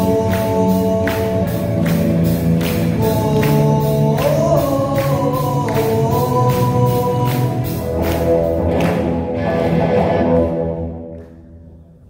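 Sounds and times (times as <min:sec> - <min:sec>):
drums keeping steady beat: 0:00.0 - 0:09.2
held melody line: 0:00.0 - 0:11.0
live band playing amplified music: 0:00.0 - 0:11.8.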